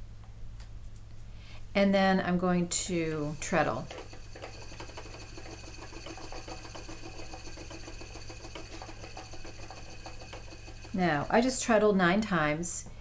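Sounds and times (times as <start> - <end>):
spinning wheel clicking: 3.0 - 11.5.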